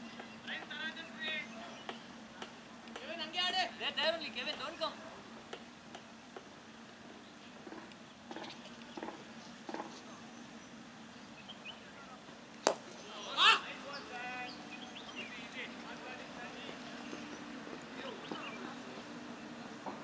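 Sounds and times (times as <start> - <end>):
cricket bat hitting ball: 12.6 - 12.9
player shouting: 13.2 - 14.4.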